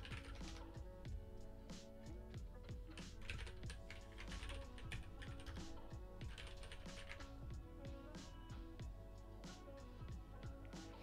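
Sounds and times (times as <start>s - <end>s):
computer keyboard typing: 0.0s - 0.6s, 3.2s - 5.7s, 6.3s - 7.3s.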